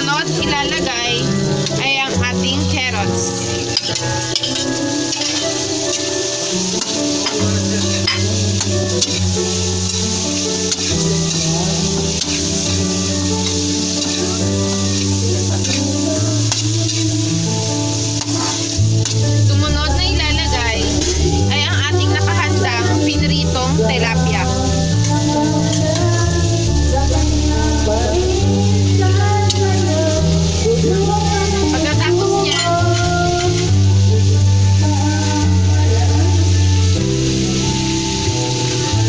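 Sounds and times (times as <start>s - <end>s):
vegetables sizzling in oil: 0.0s - 39.0s
metal spatula scraping pan: 3.5s - 17.0s, 18.2s - 19.3s.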